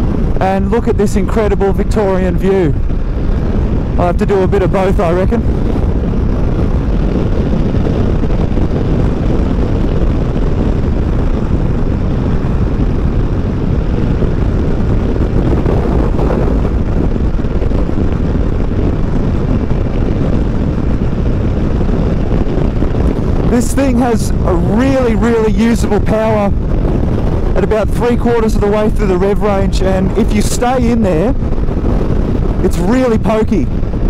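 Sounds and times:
wind rushing over microphone: 0:00.0 - 0:34.0.

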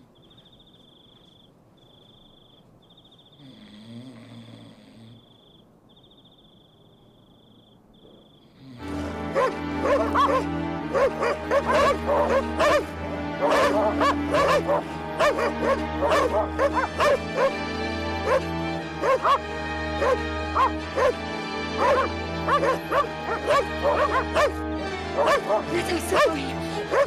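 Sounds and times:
dog barking: 0:09.3 - 0:17.6, 0:18.2 - 0:19.4, 0:20.0 - 0:21.2, 0:21.8 - 0:24.6, 0:25.2 - 0:27.0.

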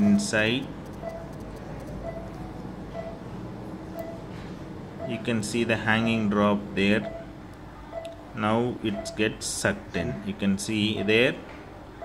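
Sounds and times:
patient monitor beeps: 0:00.0 - 0:11.4
steady low hum: 0:00.0 - 0:12.0.

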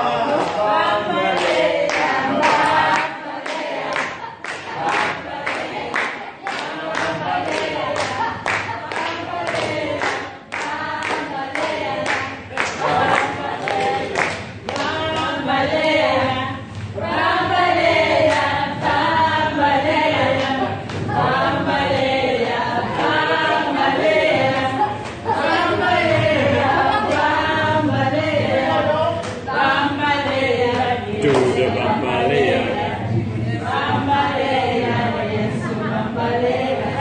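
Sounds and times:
group singing unaccompanied: 0:00.0 - 0:37.0.

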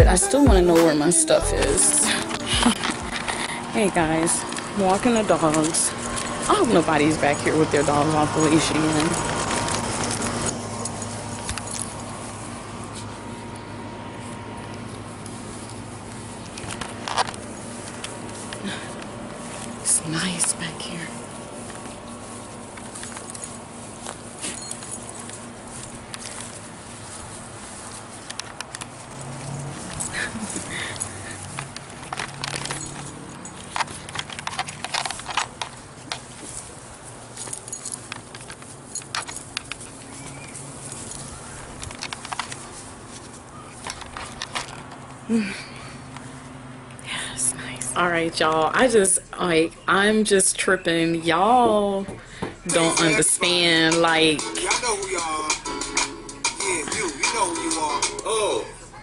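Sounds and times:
faint hum: 0:00.0 - 0:08.3
low steady hum: 0:00.0 - 0:42.4
rustling on grass: 0:01.0 - 0:46.8
dog leashes and collars clinking: 0:01.6 - 0:13.2, 0:14.2 - 0:45.2.

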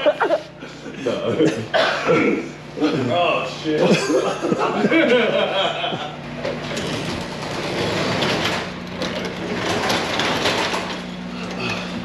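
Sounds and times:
garage door rollers rumbling: 0:03.6 - 0:12.0.

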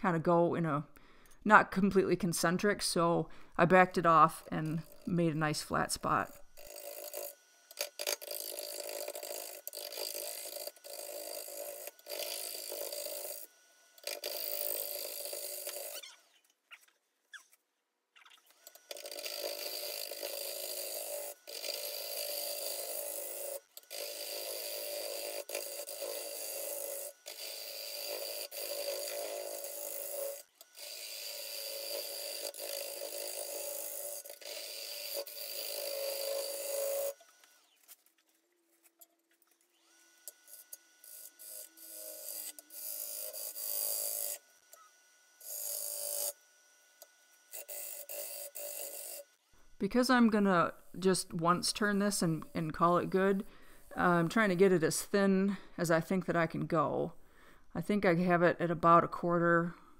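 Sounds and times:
wood lathe running: 0:04.2 - 0:16.3, 0:18.5 - 0:37.9, 0:39.7 - 0:49.8
gouge shaving wood on lathe: 0:06.2 - 0:16.3, 0:18.5 - 0:37.8, 0:39.7 - 0:46.4, 0:47.1 - 0:49.3.

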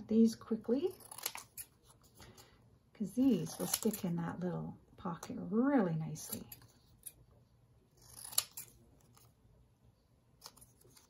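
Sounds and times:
scissors snipping paper: 0:00.8 - 0:02.0, 0:03.3 - 0:04.1, 0:08.0 - 0:09.3.

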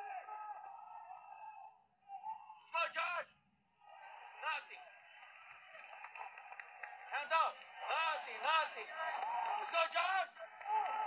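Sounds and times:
arena crowd din: 0:00.0 - 0:11.0.

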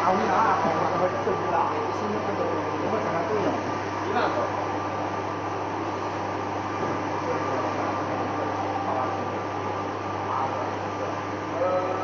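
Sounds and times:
printer whirring and humming: 0:00.0 - 0:12.0.

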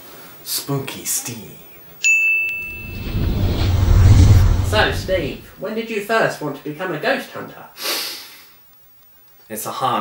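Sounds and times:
low rumble: 0:02.6 - 0:05.5.

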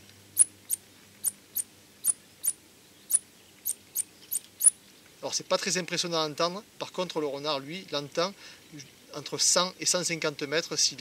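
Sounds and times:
high squeaks of fox call: 0:00.4 - 0:04.8.

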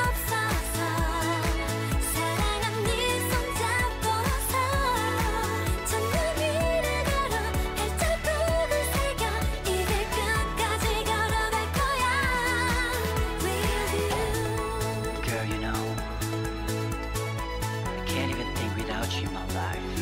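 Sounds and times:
person singing with vibrato: 0:00.0 - 0:16.1
pulsing bass beat: 0:00.0 - 0:20.0.

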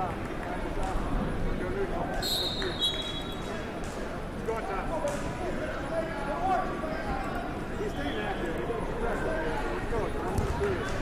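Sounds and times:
crowd chatter: 0:00.0 - 0:11.0
referee's whistle: 0:02.2 - 0:03.4.

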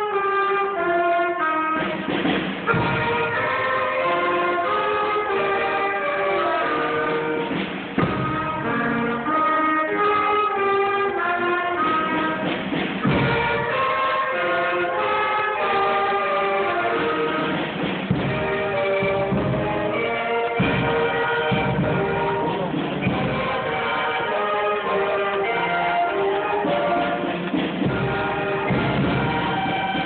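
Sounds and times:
concert band holding long notes: 0:00.0 - 0:30.0.

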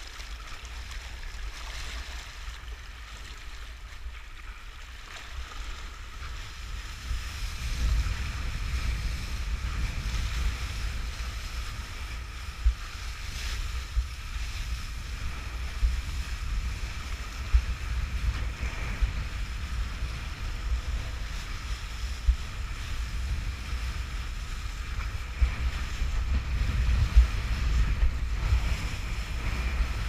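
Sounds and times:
board thumping on waves: 0:00.0 - 0:30.0
wind rumble on microphone: 0:00.0 - 0:30.0.

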